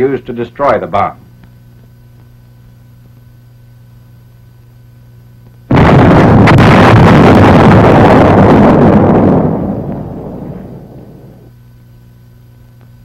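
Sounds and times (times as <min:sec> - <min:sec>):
explosion blast: 0:05.7 - 0:11.5.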